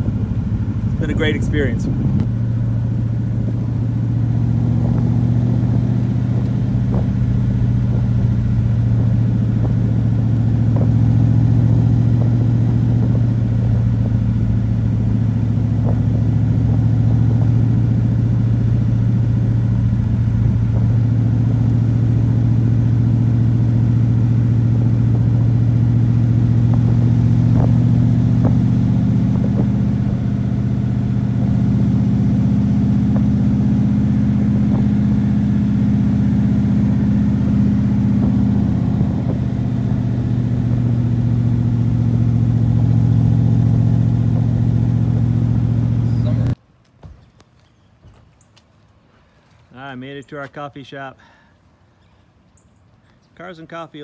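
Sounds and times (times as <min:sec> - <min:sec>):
car engine droning: 0:00.0 - 0:46.6.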